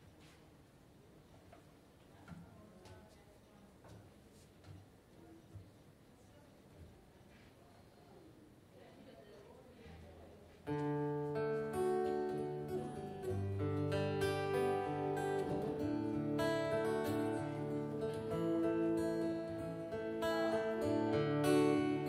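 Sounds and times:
acoustic guitar strumming: 0:10.7 - 0:22.0.

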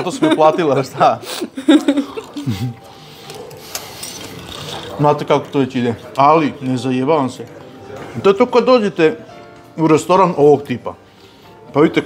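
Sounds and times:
cutlery on porcelain plates: 0:03.2 - 0:05.0.

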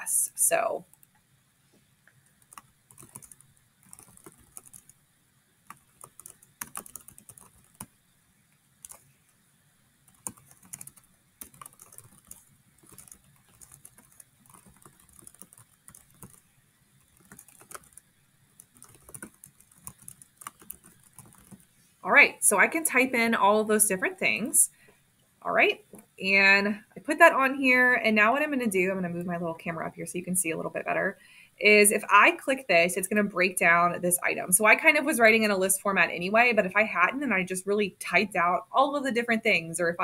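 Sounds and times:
faint keyboard typing: 0:02.0 - 0:05.0, 0:05.6 - 0:08.0, 0:08.8 - 0:09.2, 0:10.1 - 0:21.8.

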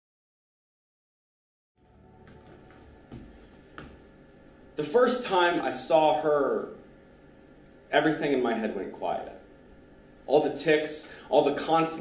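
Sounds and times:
low steady room hum: 0:01.8 - 0:12.0.

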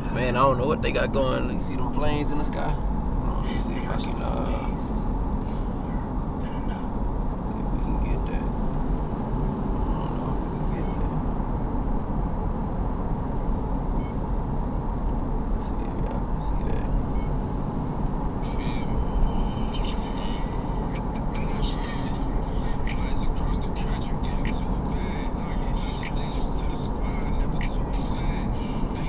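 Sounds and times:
car road and engine rumble: 0:00.0 - 0:29.0.

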